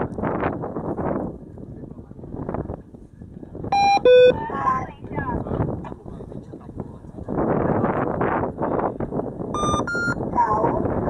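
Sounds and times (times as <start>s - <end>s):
wind buffeting microphone: 0.0s - 11.0s
short electronic beeps: 3.8s - 4.4s, 9.6s - 10.2s.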